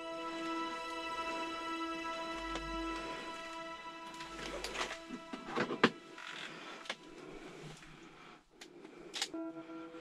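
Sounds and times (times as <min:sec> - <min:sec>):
handling rustling and scraping: 0:04.1 - 0:08.0.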